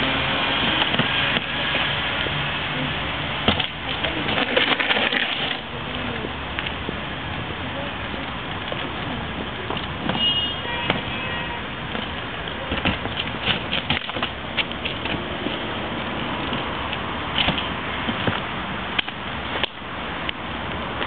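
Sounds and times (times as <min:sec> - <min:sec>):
wheelie bin rolling on concrete: 0:00.0 - 0:19.7
street noise: 0:00.0 - 0:21.0.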